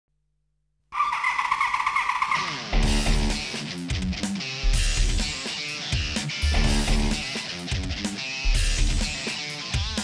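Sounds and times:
theme music with heavy bass: 0:02.5 - 0:10.0.

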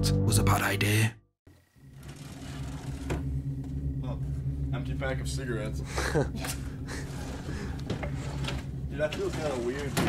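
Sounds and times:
steady low hum: 0:01.5 - 0:10.0.

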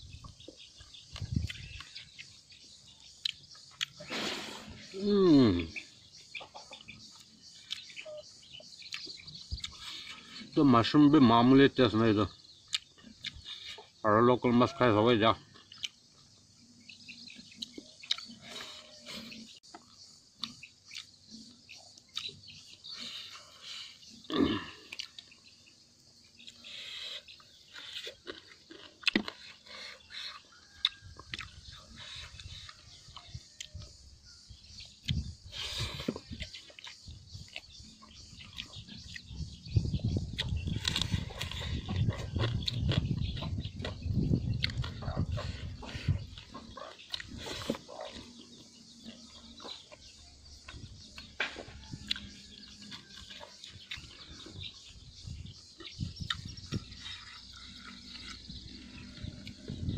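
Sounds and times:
person chewing and smacking: 0:00.2 - 0:02.4, 0:03.0 - 0:04.1, 0:06.6 - 0:10.4, 0:12.6 - 0:13.8, 0:15.5 - 0:16.5, 0:17.2 - 0:25.6, 0:26.3 - 0:33.9, 0:34.8 - 0:59.8.

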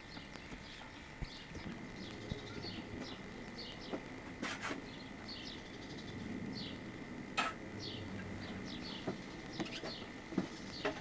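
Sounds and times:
faint steady high whine: 0:00.0 - 0:11.0
outdoor ambience: 0:00.0 - 0:11.0
small birds chirping: 0:00.0 - 0:11.0.

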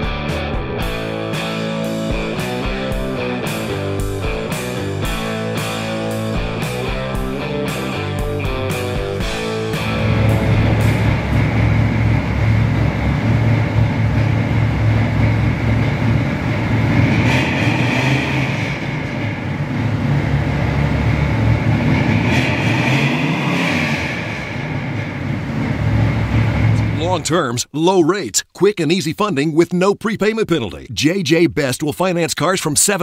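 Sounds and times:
car engine idling: 0:00.8 - 0:27.4.

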